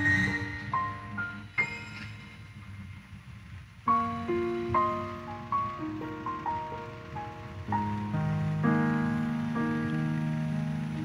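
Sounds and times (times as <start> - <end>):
keyboard chords: 3.9 - 11.0.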